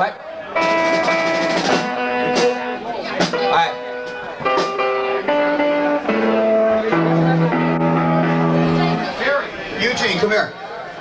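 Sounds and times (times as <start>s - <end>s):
amplified guitar chords strummed: 0.6s - 9.2s.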